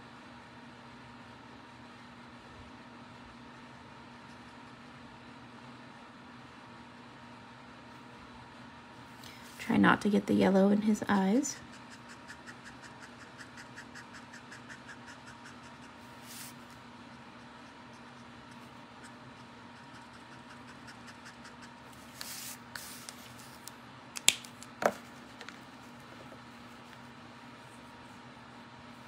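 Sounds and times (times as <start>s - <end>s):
low steady hum: 0.0s - 29.0s
marker nib stroking over cardstock: 11.6s - 23.2s.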